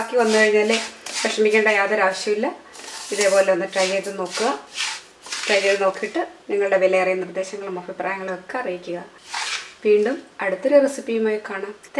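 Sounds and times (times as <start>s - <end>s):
person speaking: 0.0s - 10.8s.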